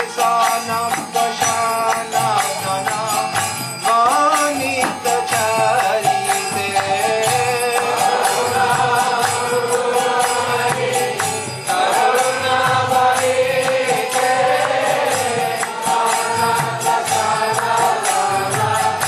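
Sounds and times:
small hand cymbals struck: 0.0 - 19.0.

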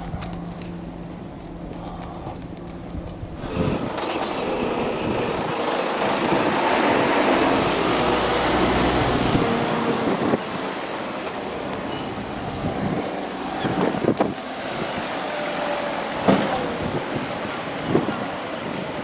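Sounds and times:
lorry diesel engine rumble: 0.0 - 19.0
outdoor background noise: 0.0 - 19.0
sharp clicks: 0.2 - 4.2.

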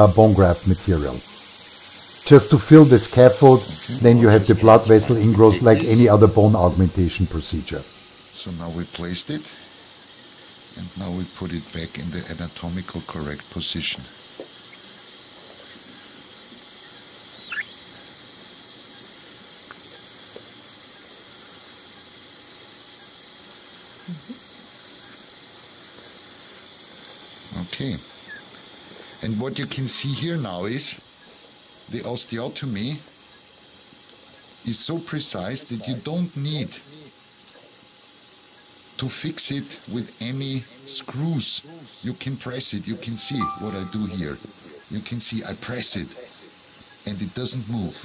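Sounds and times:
faint hiss: 0.0 - 48.0.

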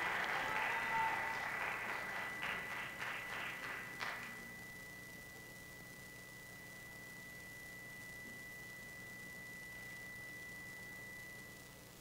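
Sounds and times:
audience applause: 0.0 - 4.4
faint high-pitched tone: 0.0 - 12.0.

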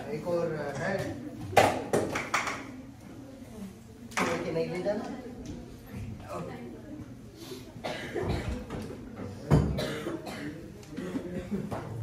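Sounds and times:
person coughing: 7.8 - 8.6, 9.8 - 11.4.

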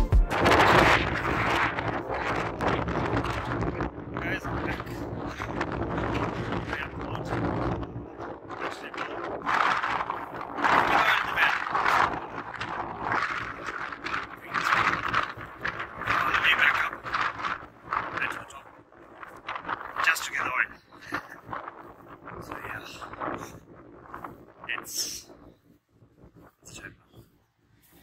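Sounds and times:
wind rumbling on microphone: 0.0 - 28.0
man talking: 1.1 - 9.4, 10.7 - 12.7, 13.4 - 17.2, 18.1 - 18.7, 19.9 - 21.4, 22.4 - 23.2, 24.6 - 25.3, 26.6 - 27.0.

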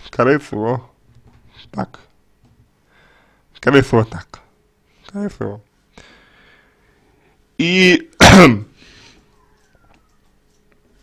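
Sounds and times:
man coughing: 8.2 - 8.8.

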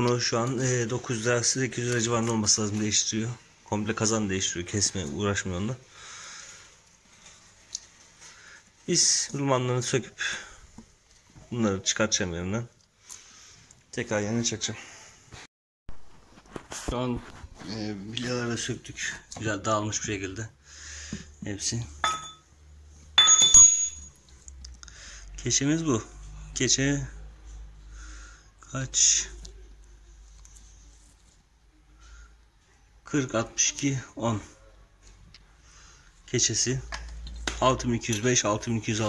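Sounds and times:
steel rings clinking: 22.0 - 22.4, 23.2 - 24.2.

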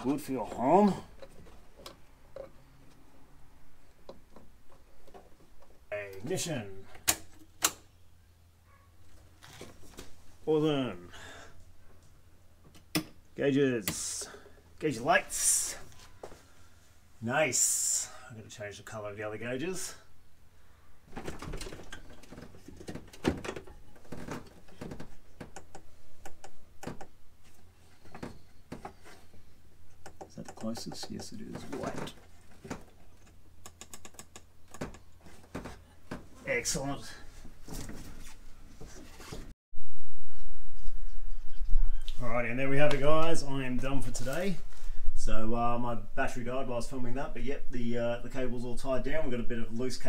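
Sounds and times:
light clicks and knocks: 21.2 - 29.2, 29.9 - 36.3.

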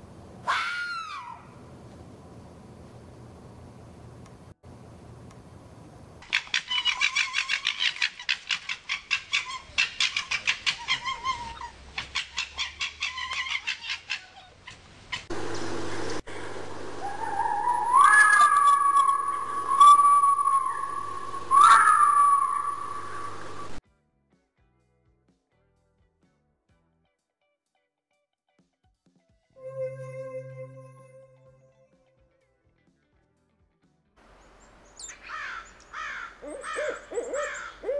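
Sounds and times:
foxes gekkering: 6.3 - 15.3, 17.0 - 23.8
foxes whining cries: 9.1 - 14.6, 17.0 - 23.8, 36.4 - 37.9.

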